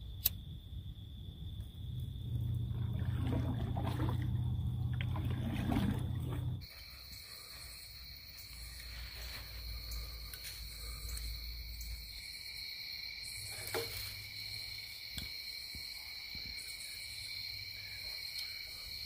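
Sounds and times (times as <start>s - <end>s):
crickets trilling: 0.0s - 19.0s
sharp click: 0.2s - 0.4s
low rumbling roar: 1.7s - 6.6s.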